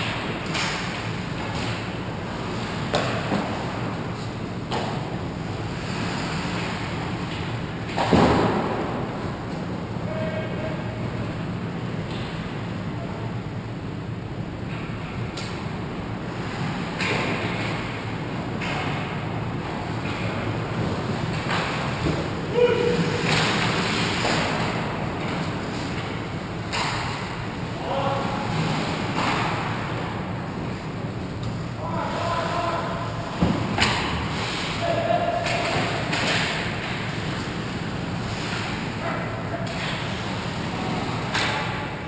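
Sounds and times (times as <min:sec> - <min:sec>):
steady low hum: 0:00.0 - 0:42.0
skates scraping ice: 0:20.8 - 0:26.1, 0:33.3 - 0:41.4.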